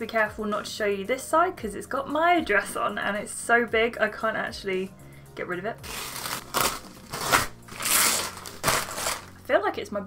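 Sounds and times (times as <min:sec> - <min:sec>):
wrapping rustling and crinkling: 0:05.8 - 0:09.4.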